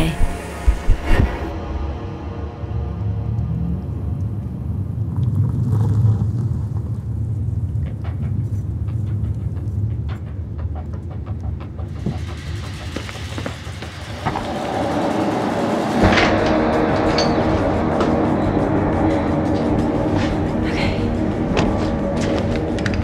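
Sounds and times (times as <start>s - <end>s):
low dark rumbling drone: 0.0s - 10.4s, 11.2s - 23.0s.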